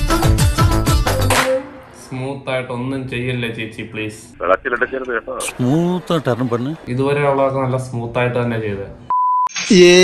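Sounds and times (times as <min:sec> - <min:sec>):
man talking: 0:02.1 - 0:08.8
censor beep: 0:09.1 - 0:09.5.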